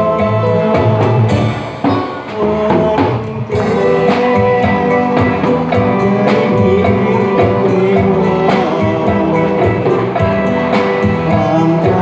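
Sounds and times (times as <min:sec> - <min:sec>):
drum kit beat: 0:00.0 - 0:12.0
live band music over loudspeakers: 0:00.0 - 0:12.0.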